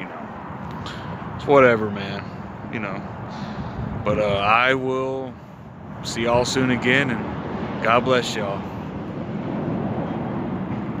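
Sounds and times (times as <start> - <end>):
wind on microphone: 2.4 - 11.0.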